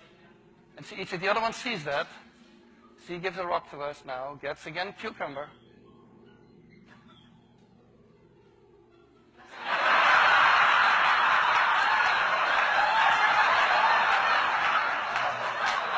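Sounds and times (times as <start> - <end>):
audience laughing: 9.4 - 15.9.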